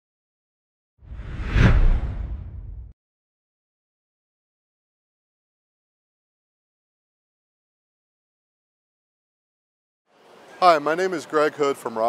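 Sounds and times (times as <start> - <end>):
deep rumble: 1.1 - 2.9
whoosh sound effect: 1.1 - 2.9.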